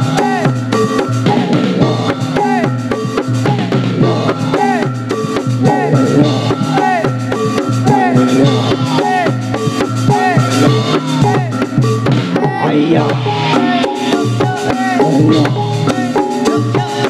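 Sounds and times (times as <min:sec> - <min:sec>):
drums beating a steady rhythm: 0:00.0 - 0:17.0
pitched melody: 0:00.0 - 0:17.0.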